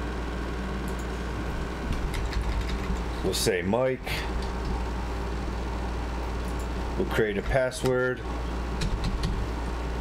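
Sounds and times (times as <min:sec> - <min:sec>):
steady low hum: 0:00.0 - 0:10.0
computer keyboard keystrokes: 0:01.9 - 0:03.0, 0:08.8 - 0:09.4.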